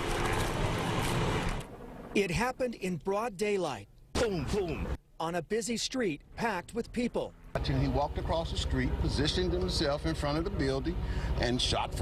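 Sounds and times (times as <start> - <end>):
passing vehicles rushing: 7.3 - 12.0.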